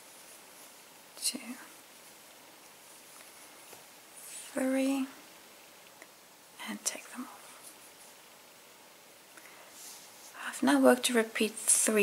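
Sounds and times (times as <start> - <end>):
faint room tone hiss: 0.0 - 12.0
person speaking softly: 1.2 - 1.8, 4.3 - 5.2.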